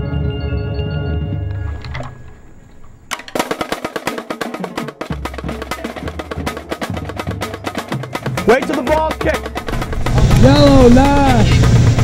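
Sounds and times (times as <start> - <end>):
snare drums playing rapidly: 3.3 - 12.0.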